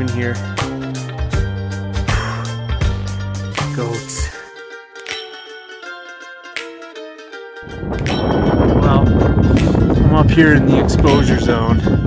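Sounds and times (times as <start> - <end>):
plucked-string music: 0.0 - 12.0
wind buffeting microphone: 7.6 - 12.0.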